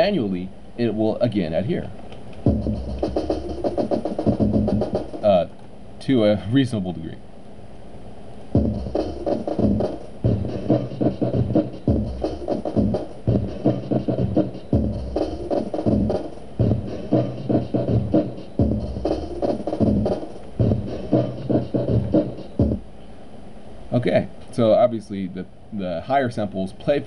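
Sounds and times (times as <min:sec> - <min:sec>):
fast choppy drum loop: 0:02.4 - 0:05.4, 0:08.6 - 0:22.8.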